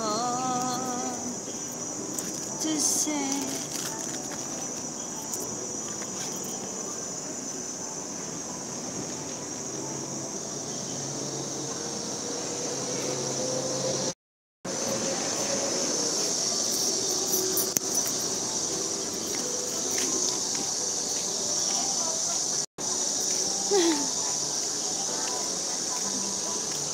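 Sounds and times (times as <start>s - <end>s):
insects droning in chorus: 0.0s - 26.9s.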